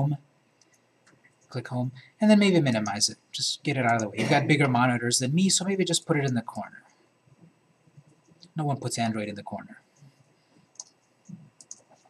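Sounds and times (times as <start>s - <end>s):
computer mouse clicks: 0.6s - 1.5s, 10.0s - 12.0s.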